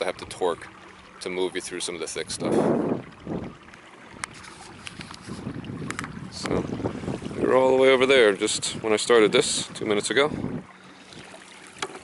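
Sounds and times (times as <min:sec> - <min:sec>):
canoe moving across water: 0:00.0 - 0:12.0
wind on microphone: 0:02.2 - 0:11.4.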